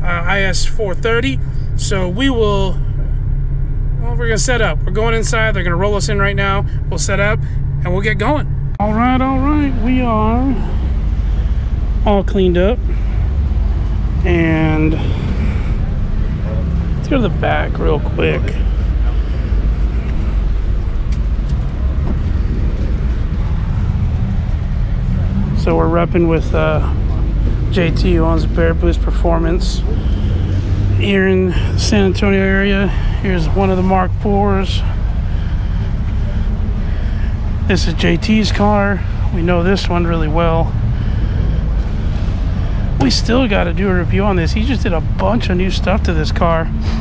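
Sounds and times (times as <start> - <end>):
deep mechanical rumble and hum: 0.0 - 47.0.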